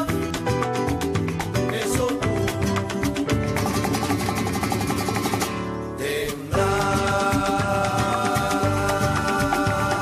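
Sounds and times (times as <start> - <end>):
man singing: 0.0 - 0.6, 1.5 - 2.9, 6.0 - 10.0
strummed acoustic guitars: 0.0 - 10.0.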